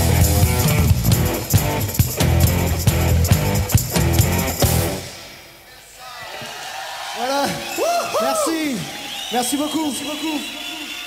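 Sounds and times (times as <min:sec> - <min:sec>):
live band playing: 0:00.0 - 0:05.4.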